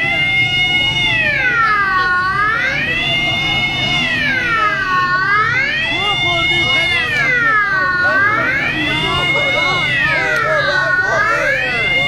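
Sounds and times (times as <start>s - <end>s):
police siren wailing: 0.0s - 12.0s.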